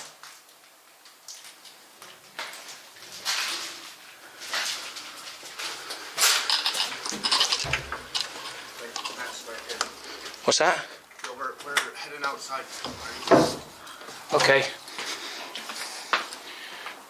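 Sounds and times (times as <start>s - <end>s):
footsteps crunching over debris: 1.4s - 17.0s.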